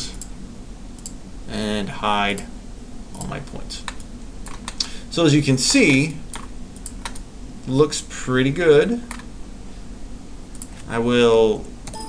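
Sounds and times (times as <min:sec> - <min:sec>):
low steady hum: 0:00.0 - 0:12.0
keyboard and mouse clicks: 0:06.3 - 0:07.2.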